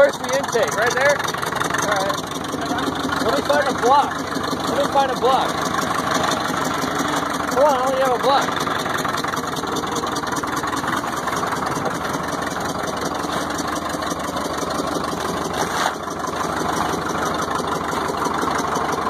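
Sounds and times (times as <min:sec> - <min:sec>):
bulldozer engine idling: 0:00.0 - 0:19.0.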